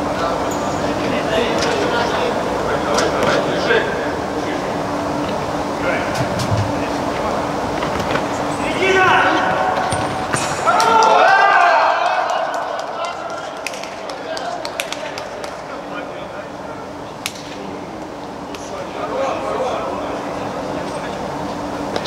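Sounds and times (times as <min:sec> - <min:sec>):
players shouting: 0:08.6 - 0:13.6.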